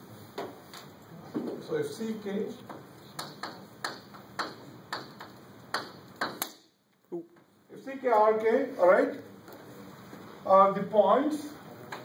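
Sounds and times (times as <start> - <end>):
chalk tapping and scraping on chalkboard: 2.6 - 6.4.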